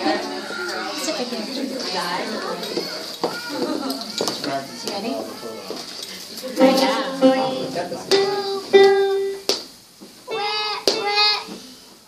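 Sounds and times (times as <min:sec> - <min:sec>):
people chattering: 0:00.0 - 0:09.4.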